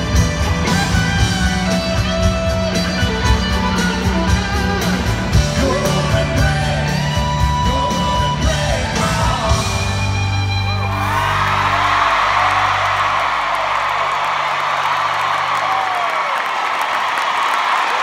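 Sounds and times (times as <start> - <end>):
person singing: 5.3 - 10.2.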